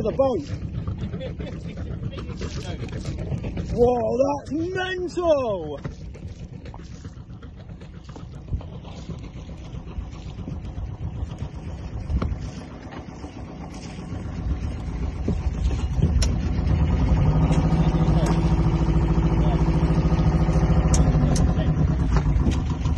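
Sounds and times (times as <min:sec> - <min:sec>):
boat engine humming: 0:00.0 - 0:22.9.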